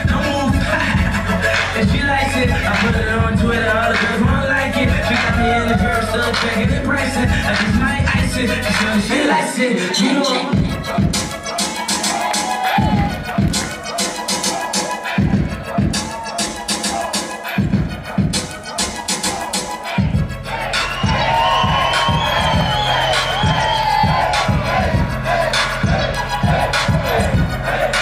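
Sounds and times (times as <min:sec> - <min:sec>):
deep bass and regular beat: 0:00.0 - 0:09.6, 0:10.4 - 0:28.0
hip-hop dance mix: 0:00.0 - 0:28.0
crowd cheering: 0:08.8 - 0:28.0.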